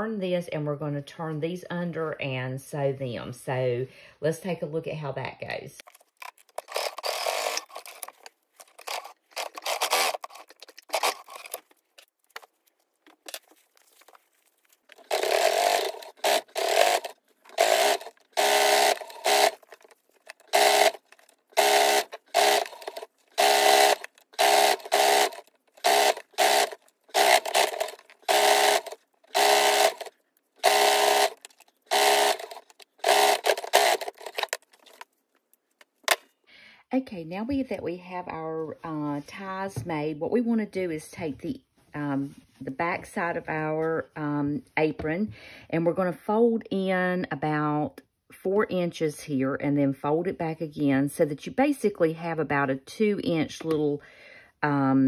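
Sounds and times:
sewing machine stitching: 6.5s - 8.1s, 8.7s - 11.6s, 14.9s - 35.0s.

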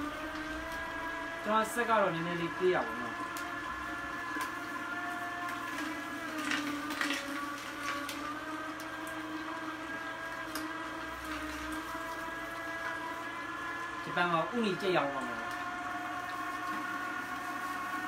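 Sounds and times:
juicer motor hum: 0.0s - 18.0s.

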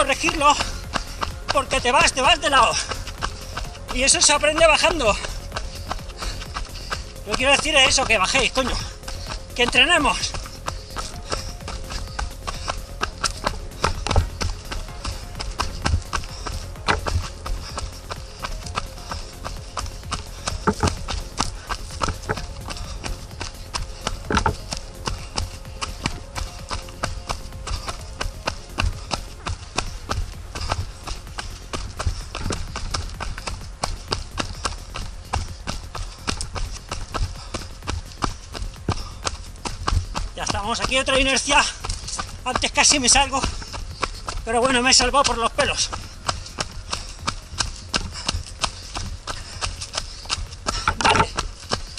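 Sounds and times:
running footfalls on dirt path: 0.0s - 51.9s.

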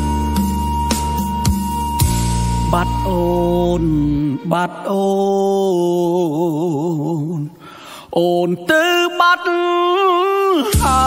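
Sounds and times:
man singing long note: 2.6s - 7.6s.

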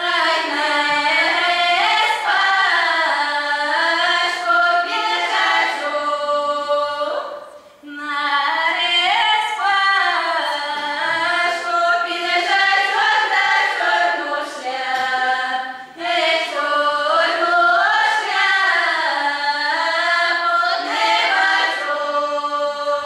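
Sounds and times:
girls singing a cappella: 0.0s - 23.0s.

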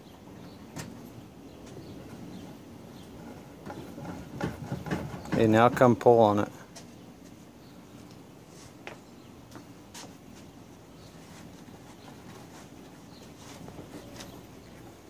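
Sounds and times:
hands clicking and tapping metal: 3.6s - 6.1s.

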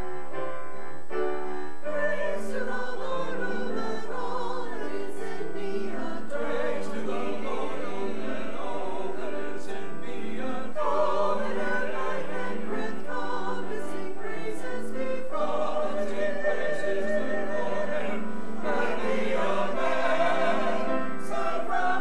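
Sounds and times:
church choir singing: 1.2s - 22.0s.

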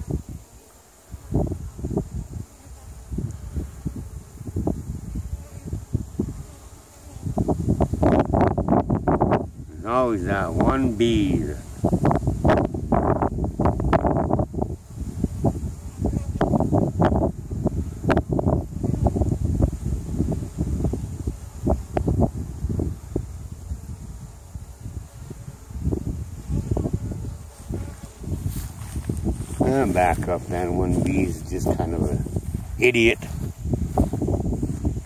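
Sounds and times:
wind buffeting microphone: 0.0s - 35.0s
rustling: 27.4s - 31.2s.

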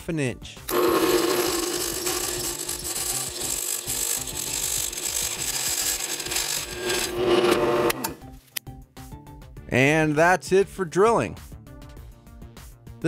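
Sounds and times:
drill bit scraping through metal: 0.7s - 8.2s
drill press motor hum: 0.7s - 8.2s.

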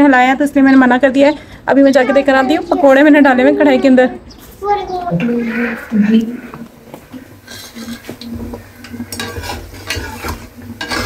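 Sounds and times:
food sizzling in hot oil: 6.7s - 11.0s
metal spoon scraping pan: 7.3s - 11.0s.

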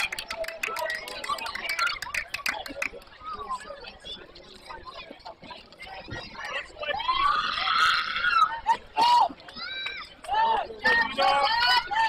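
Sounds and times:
children shouting and cheering: 6.5s - 12.0s.

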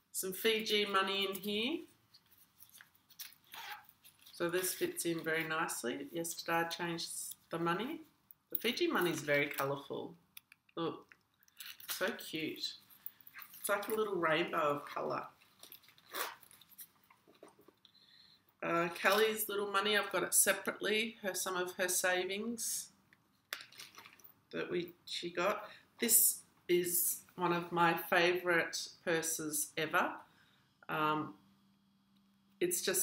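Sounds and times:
leather wallet rustling: 2.1s - 5.5s, 14.8s - 17.8s.

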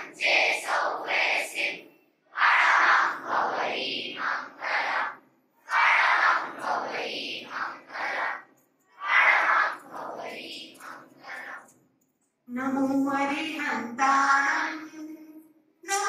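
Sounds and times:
children chanting a prayer in unison: 0.0s - 11.7s.

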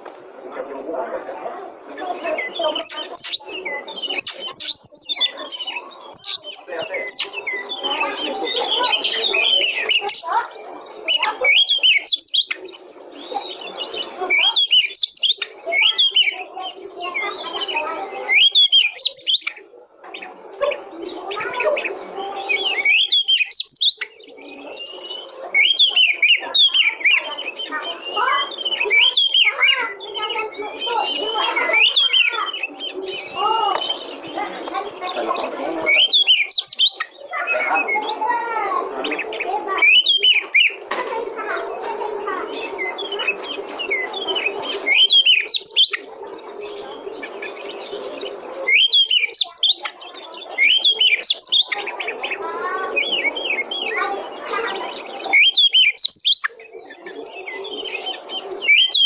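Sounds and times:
bird singing whistles and chatter: 1.7s - 59.0s.

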